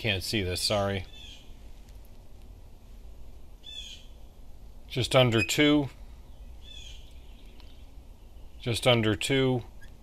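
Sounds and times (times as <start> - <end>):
low steady hum: 0.0 - 10.0
faint bird chirps: 1.0 - 1.6, 3.6 - 4.3, 5.2 - 8.8, 9.7 - 10.0.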